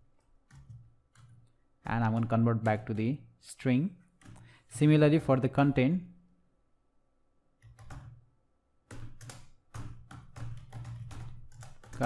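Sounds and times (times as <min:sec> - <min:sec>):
keyboard typing clicks: 0:00.2 - 0:01.6, 0:07.6 - 0:08.2, 0:08.8 - 0:12.0.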